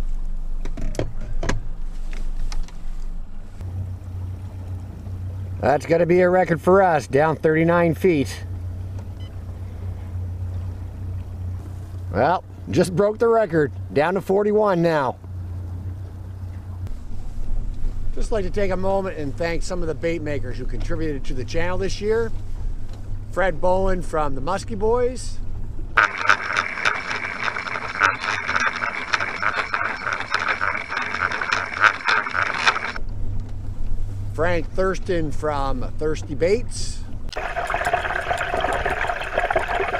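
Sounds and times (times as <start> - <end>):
faint rush of wind and water: 1.8 - 39.9
boat motor humming: 3.3 - 39.9
lure rattling underwater: 26.0 - 33.0, 37.3 - 39.9
rushing water: 26.0 - 33.0, 37.3 - 39.9.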